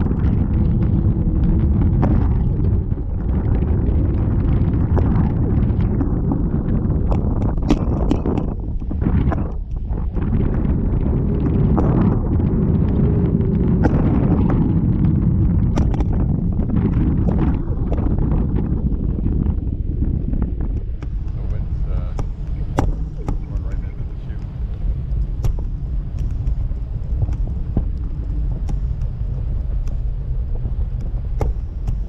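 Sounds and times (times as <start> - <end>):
wind buffeting microphone: 0.0 - 32.0.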